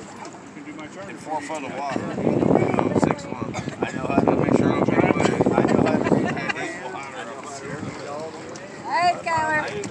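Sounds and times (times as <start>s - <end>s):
people chatting: 0.6s - 9.9s
wind noise on microphone: 1.9s - 6.6s.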